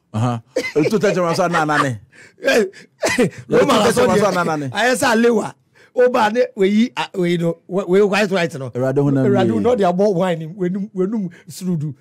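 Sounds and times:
man exclaiming and talking: 0.2 - 12.0.

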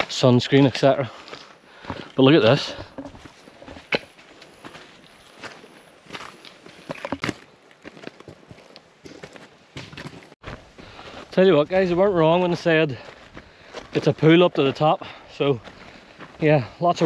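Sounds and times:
footsteps on rocky dirt track: 0.0 - 17.0.

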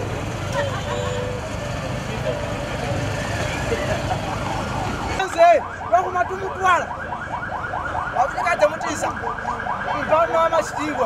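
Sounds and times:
vehicle engines rumbling: 0.0 - 11.0.

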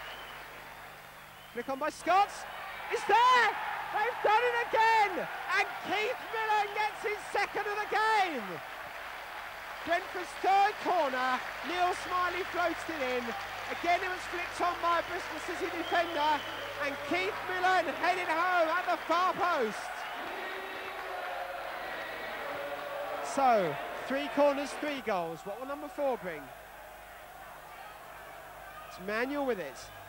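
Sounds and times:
crowd cheering and applauding: 0.0 - 30.0
commentator shouting: 1.7 - 8.6, 9.8 - 20.5, 23.1 - 26.5.

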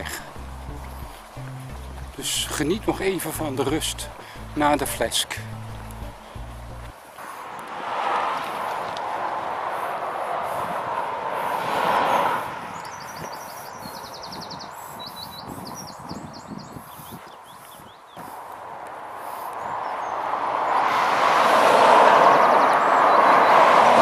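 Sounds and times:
cars passing: 0.0 - 15.9, 17.0 - 24.0
footsteps on tarmac: 0.0 - 20.9
small bird chirping: 12.7 - 18.3.

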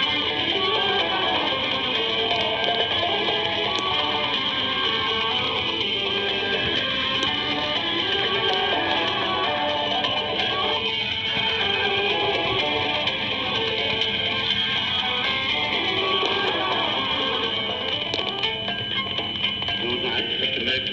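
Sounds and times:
guitar music over radio speaker: 0.0 - 20.9.

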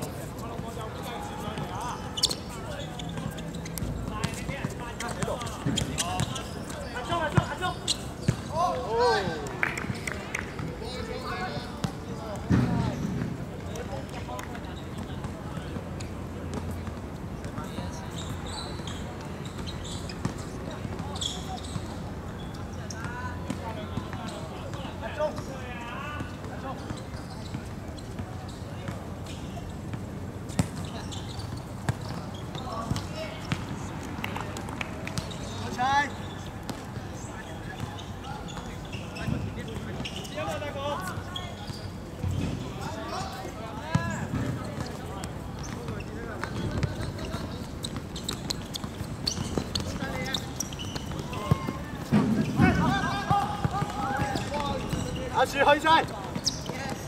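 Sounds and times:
players shouting: 49.5 - 57.0.

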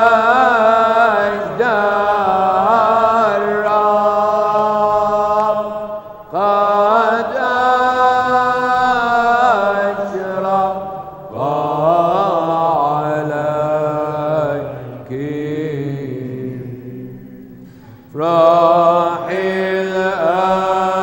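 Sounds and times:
liturgical chant singing: 0.0 - 21.0.

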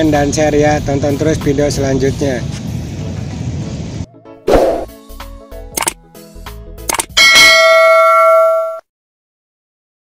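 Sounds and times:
background music: 4.0 - 8.0
click sound effect: 5.8 - 6.0, 6.9 - 7.2
bright bell ding: 7.2 - 8.8.

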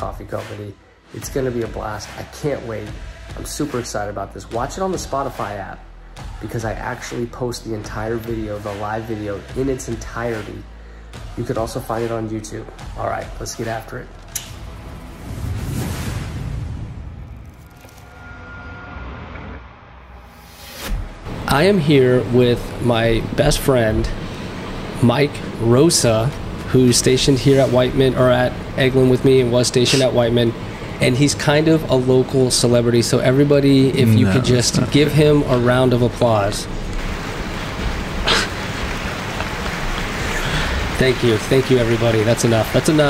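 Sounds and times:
crowd applause: 37.1 - 43.0.

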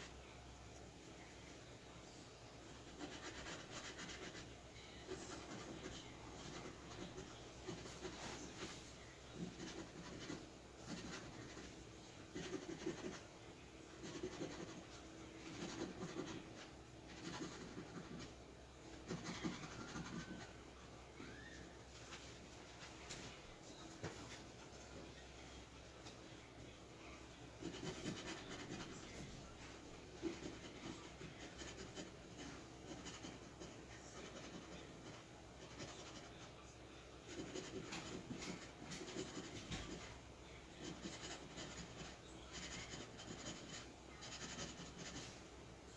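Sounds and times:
scratching lottery ticket coating: 2.8 - 8.8, 9.4 - 13.2, 14.0 - 18.3, 19.1 - 20.5, 27.6 - 29.2, 30.2 - 36.6, 37.3 - 40.1, 40.8 - 45.4.

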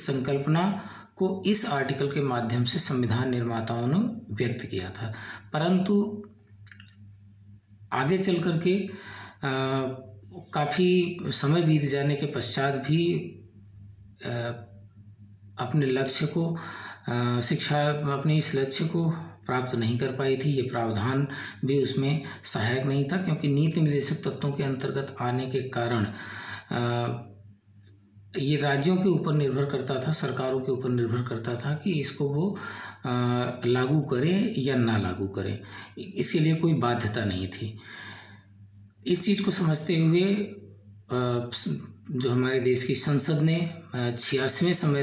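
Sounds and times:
cricket trilling: 0.0 - 45.0
faint low hum: 0.0 - 45.0.

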